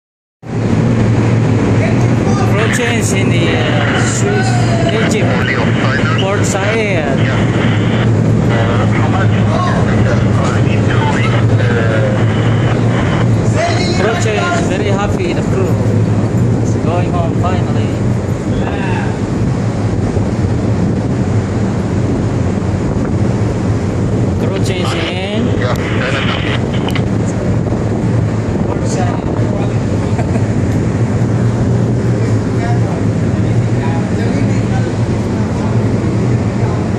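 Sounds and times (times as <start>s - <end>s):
rushing noise: 0.4s - 36.9s
ship engine drone: 0.4s - 36.9s
low machinery hum: 0.5s - 36.9s
people talking: 1.7s - 15.8s, 16.6s - 19.2s, 24.4s - 27.6s, 28.6s - 30.6s, 32.1s - 36.9s.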